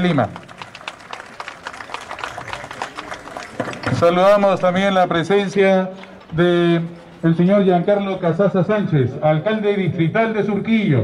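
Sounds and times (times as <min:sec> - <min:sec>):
small crowd applauding: 0:00.0 - 0:04.6.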